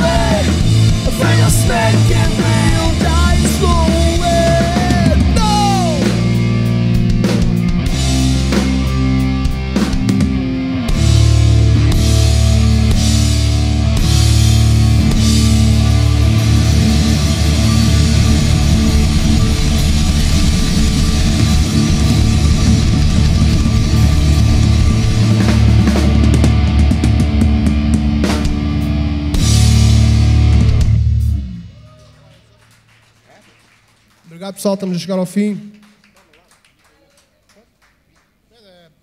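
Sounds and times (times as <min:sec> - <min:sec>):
punk rock band playing: 0:00.0 - 0:31.8.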